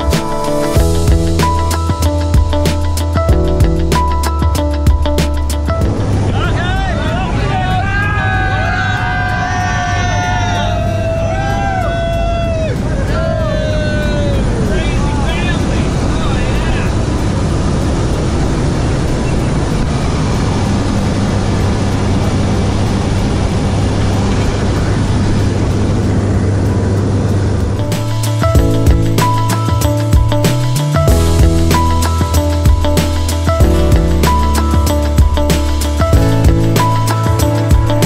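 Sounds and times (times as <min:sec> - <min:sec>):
music: 0:00.0 - 0:38.0
propeller plane engine droning: 0:00.0 - 0:38.0
people yelling and whooping: 0:06.4 - 0:15.8.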